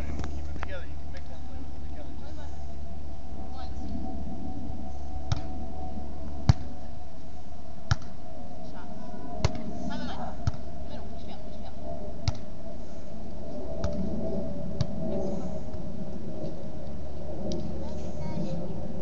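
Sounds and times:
steady background hum: 0.0 - 19.0.

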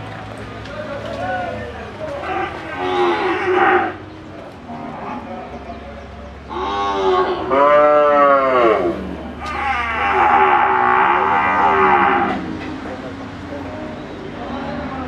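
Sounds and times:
cattle mooing: 2.2 - 4.0, 6.5 - 12.6.

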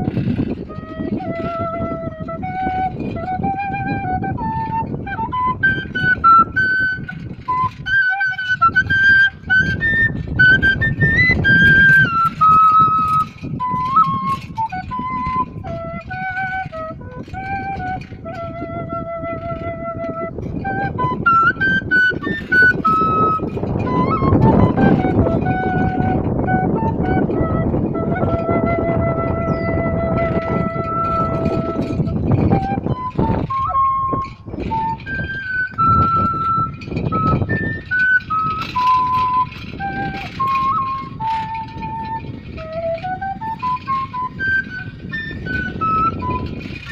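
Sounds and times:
cane flute melody: 0.0 - 46.9
low rumbling noise: 0.0 - 46.9.

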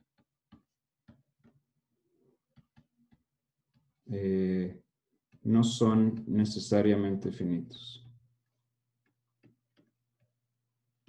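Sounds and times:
stylus tapping on drawing tablet: 9.0 - 10.3.

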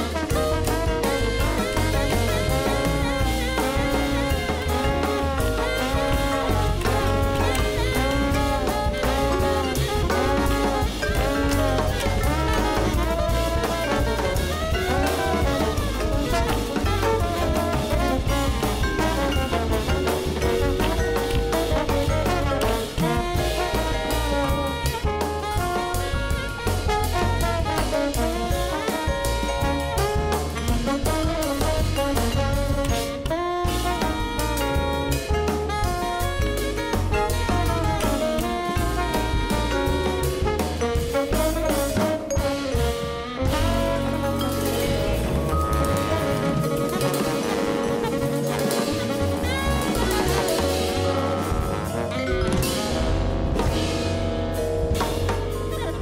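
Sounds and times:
double bass: 0.0 - 56.0
drum kit cymbals: 0.0 - 56.0
tenor saxophone: 0.0 - 56.0
trombone: 0.0 - 56.0
vibraphone: 0.2 - 56.0.

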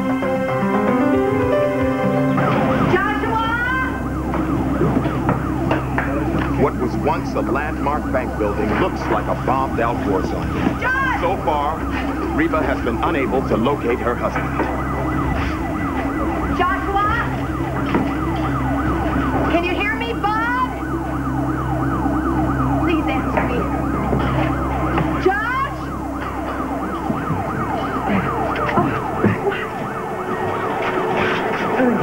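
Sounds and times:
emergency sirens wailing: 0.0 - 32.0
low rumble: 2.5 - 25.2.

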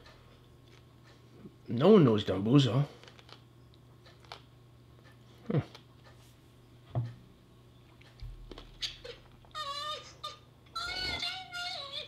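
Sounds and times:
high-pitched whimper: 9.0 - 12.0.

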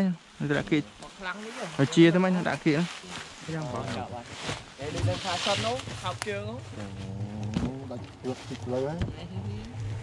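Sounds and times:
steady low hum: 4.8 - 10.0
people talking: 7.7 - 9.8.

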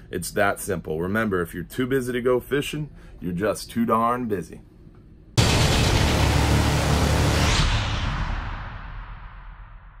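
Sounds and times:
noisy music hit with low rumble: 5.4 - 10.0
rising whoosh: 5.4 - 10.0.

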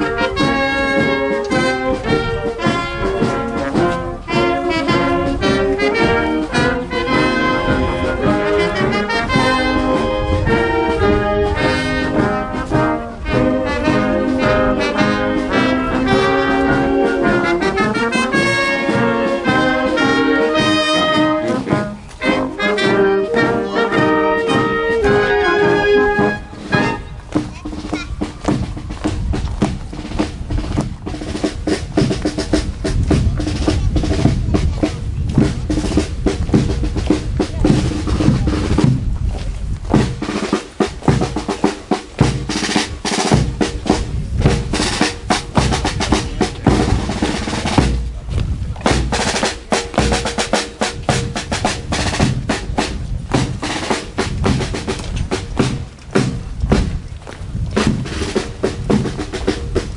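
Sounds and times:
brass notes: 0.0 - 29.2, 39.9 - 48.2, 48.8 - 56.4
snare drum rolls: 0.0 - 39.1, 39.9 - 57.0, 57.7 - 59.9
bass drum beats: 0.0 - 59.9.

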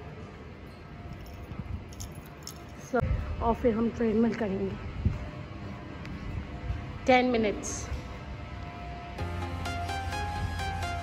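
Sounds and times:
small metal items jangling: 1.1 - 3.0.

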